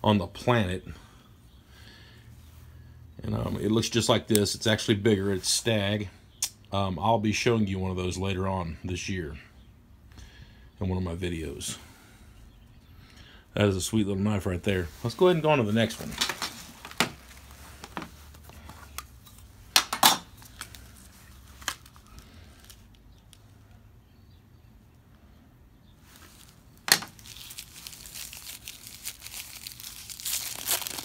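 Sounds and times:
paper crinkling and tearing: 26.1 - 31.0.

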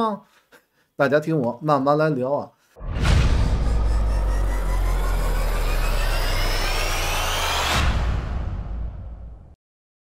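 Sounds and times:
deep bass drone: 2.8 - 9.5
cinematic hit: 2.8 - 9.6
cinematic riser sweeping upward: 2.8 - 9.6.

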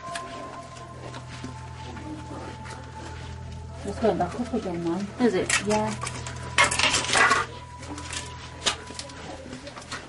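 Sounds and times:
rustling: 0.0 - 10.0
steady low hum: 0.0 - 10.0.

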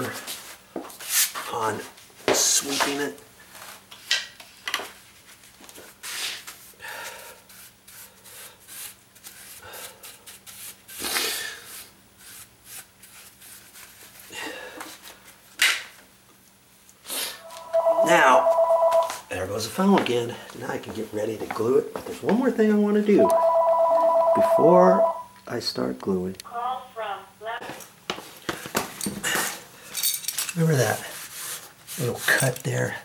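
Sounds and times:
telephone ringing two-tone trill: 17.4 - 19.3, 23.2 - 25.4.

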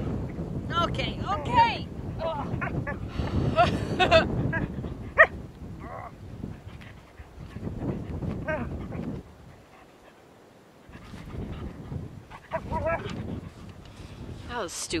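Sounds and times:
dog whining: 8.4 - 8.8, 12.5 - 13.2
dog scuffling: 10.9 - 13.8
dog yipping: 12.4 - 13.2.

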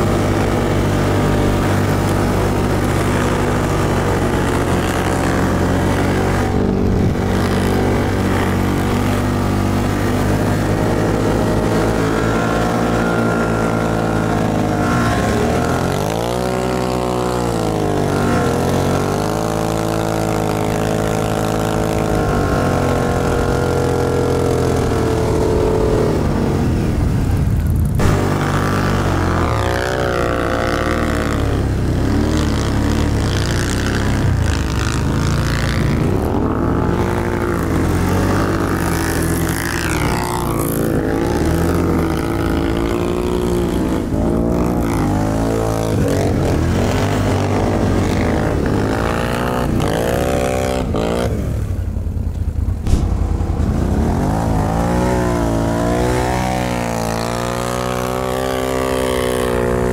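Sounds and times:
quad bike engine revving: 0.0 - 59.9.

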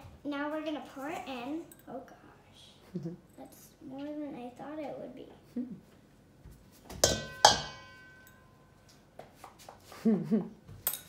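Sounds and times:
glass cup knocking on metal bowl: 7.0 - 8.0.

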